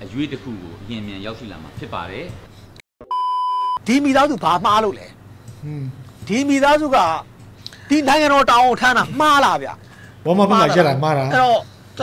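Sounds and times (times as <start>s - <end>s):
electronic beep: 3.0s - 3.8s.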